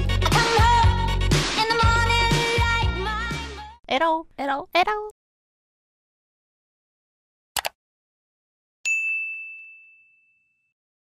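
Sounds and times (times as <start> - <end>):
bell-like notification ding: 8.9 - 10.8.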